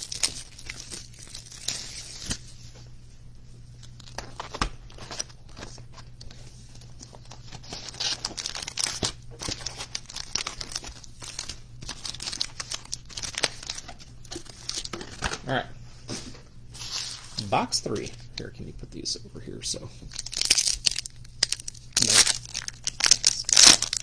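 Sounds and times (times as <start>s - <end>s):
plastic shrink wrap tearing: 0.0s - 2.5s, 7.2s - 15.3s, 20.1s - 24.0s.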